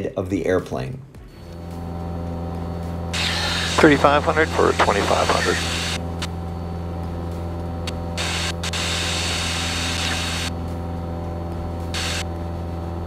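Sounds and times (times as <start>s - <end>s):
plane engine and propeller droning: 1.2s - 13.0s.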